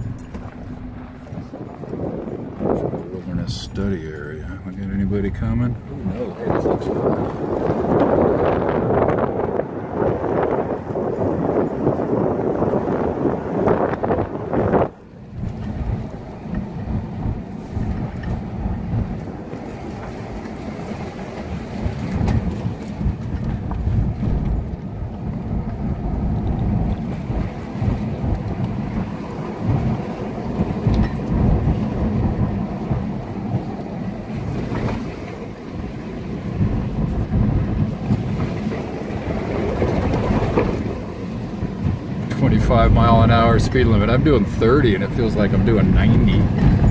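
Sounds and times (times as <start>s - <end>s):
car engine: 0.0s - 46.9s
tyres rumbling on gravel: 0.0s - 46.9s
wind buffeting microphone: 0.0s - 46.9s.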